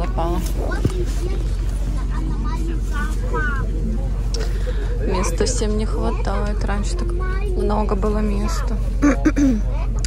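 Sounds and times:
bus engine idling: 0.0 - 10.0
voices talking: 0.0 - 10.0.

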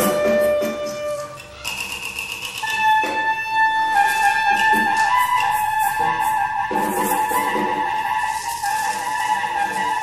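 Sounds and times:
bass clarinet high squeal: 0.0 - 2.0, 2.6 - 10.0.

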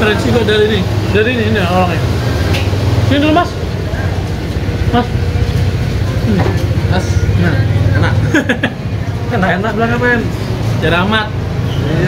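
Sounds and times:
engine hum: 0.0 - 12.0.

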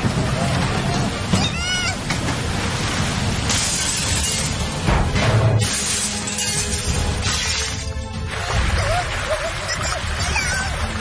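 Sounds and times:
dramatic background music: 3.7 - 11.0
cartoon crashing and shattering: 5.1 - 7.9.

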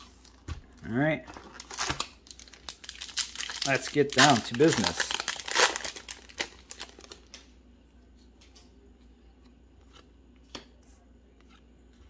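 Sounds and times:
cards rustling and clicking: 3.5 - 7.4.

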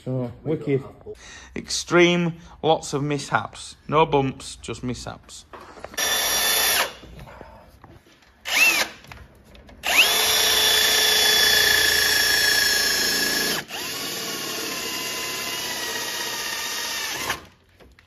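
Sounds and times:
cordless drill drilling: 5.9 - 7.0, 8.4 - 9.1, 9.8 - 17.6.

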